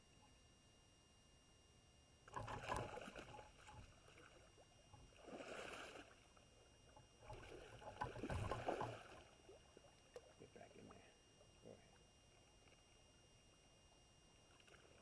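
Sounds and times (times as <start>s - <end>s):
river water splashing: 2.3s - 6.3s, 7.2s - 10.2s.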